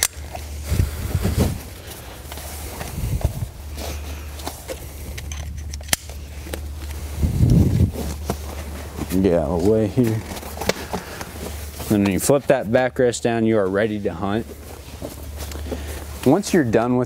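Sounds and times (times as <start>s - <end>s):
canvas and webbing rustling: 0.0s - 17.0s
steady low hum: 0.0s - 17.0s
buckle clicks: 5.1s - 6.6s.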